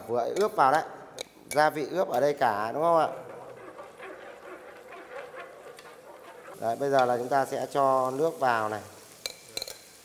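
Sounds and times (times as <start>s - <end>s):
spatula scraping frying pan: 2.4s - 10.0s
faint sizzling in oil: 2.7s - 10.0s.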